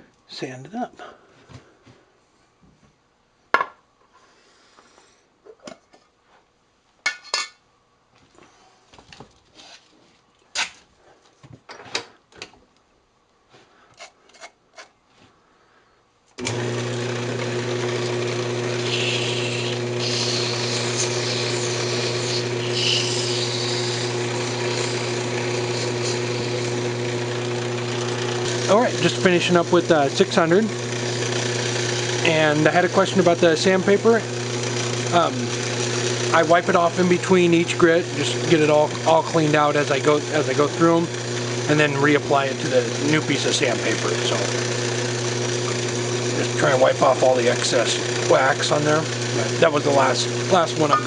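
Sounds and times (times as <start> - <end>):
lathe motor humming: 16.4 - 51.0
sandpaper hissing on spinning wood: 18.6 - 27.0.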